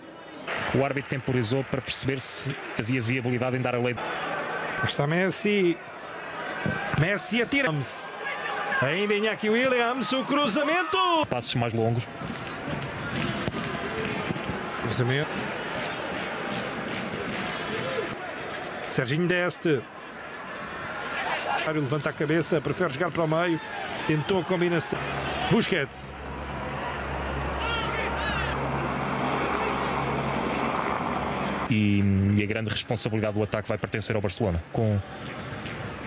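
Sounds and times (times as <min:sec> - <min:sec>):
stadium background noise: 0:00.0 - 0:36.0.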